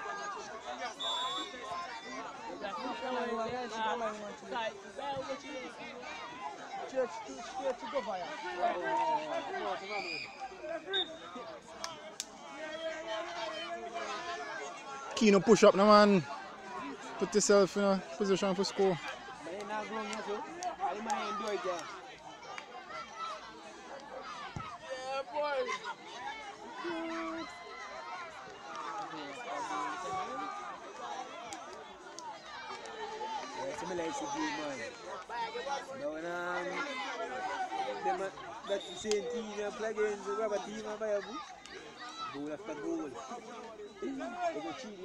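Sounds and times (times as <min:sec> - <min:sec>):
spectators chattering: 0:00.0 - 0:45.0.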